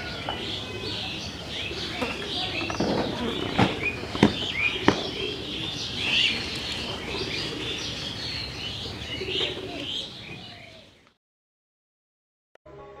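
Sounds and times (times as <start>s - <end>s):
dove cooing: 0.0s - 10.9s
birds chirping: 0.0s - 11.2s.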